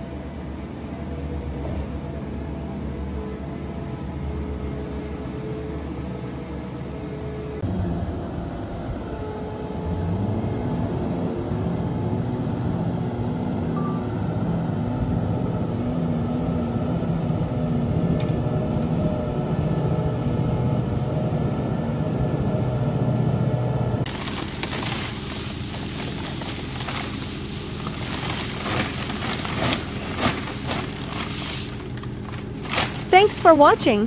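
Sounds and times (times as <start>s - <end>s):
diesel engine under load: 7.6s - 34.0s.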